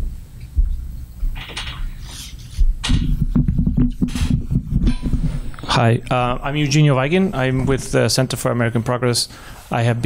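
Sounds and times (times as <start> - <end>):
microphone handling noise: 0.6 - 6.6.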